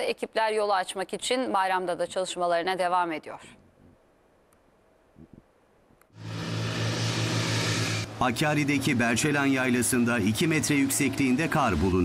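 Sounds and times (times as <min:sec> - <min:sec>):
diesel loader engine running: 0:06.2 - 0:12.0.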